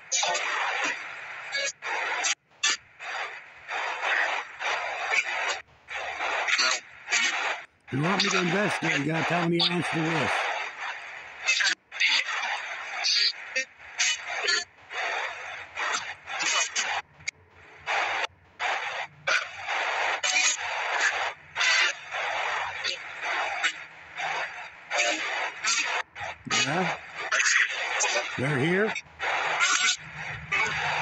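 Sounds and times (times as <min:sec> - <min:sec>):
radio static bursts: 0:00.0 - 0:10.5, 0:17.8 - 0:31.0
scraps of broadcast sound: 0:00.0 - 0:31.0.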